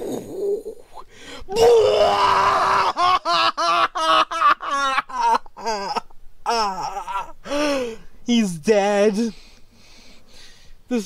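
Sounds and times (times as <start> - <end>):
person's mock dying cry: 1.5 - 7.7.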